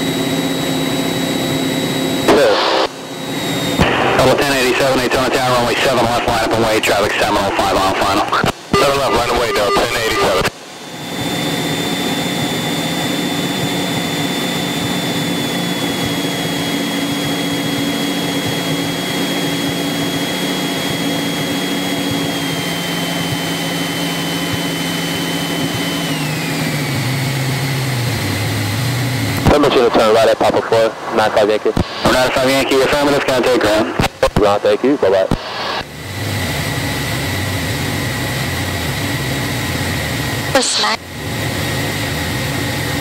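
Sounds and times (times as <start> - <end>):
propeller aircraft engine running: 0.0 - 43.0.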